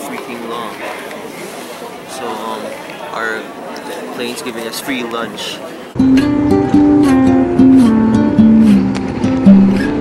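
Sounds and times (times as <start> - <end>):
acoustic guitar playing gently: 6.0 - 10.0.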